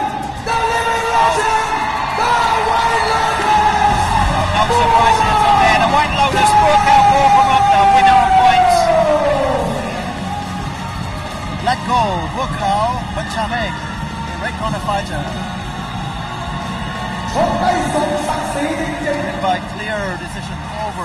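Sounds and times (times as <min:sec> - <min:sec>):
background music: 0:00.0 - 0:21.0.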